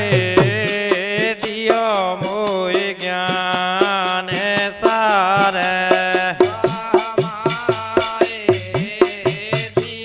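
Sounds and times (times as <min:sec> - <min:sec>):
devotional folk music: 0:00.0 - 0:10.0.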